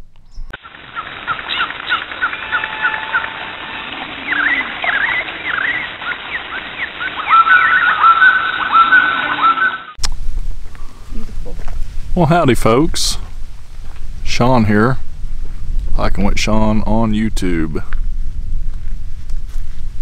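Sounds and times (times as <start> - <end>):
birds chirping: 0.2 - 10.0.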